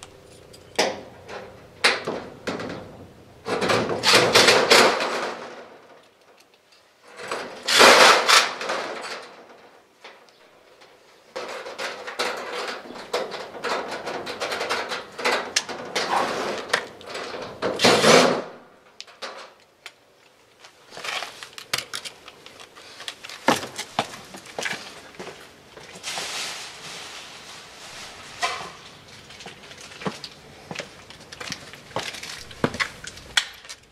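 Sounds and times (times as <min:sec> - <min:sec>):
metal doors and hasp clanking: 0:00.0 - 0:06.0, 0:10.8 - 0:19.6.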